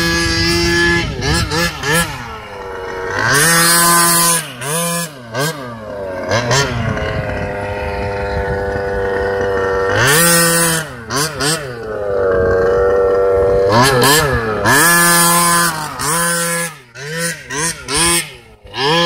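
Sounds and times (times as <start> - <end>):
small two-stroke engine revving: 0.0 - 19.0.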